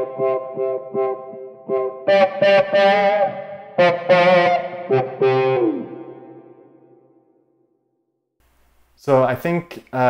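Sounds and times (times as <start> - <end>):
electric guitar through envelope filter: 0.0 - 7.2.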